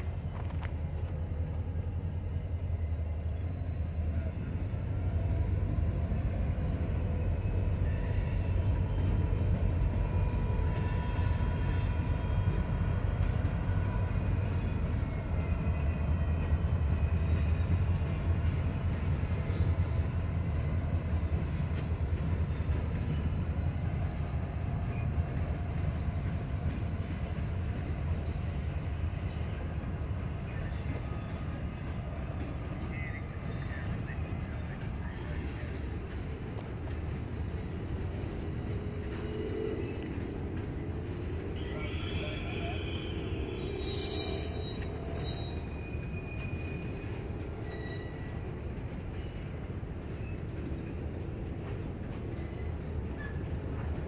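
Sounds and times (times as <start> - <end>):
freight train rumbling past: 0.0 - 54.0
wheel squeals: 43.5 - 48.5.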